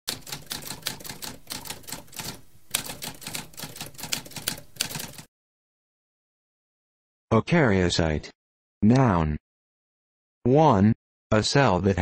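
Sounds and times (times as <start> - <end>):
typewriter keys typing: 0.1 - 5.3.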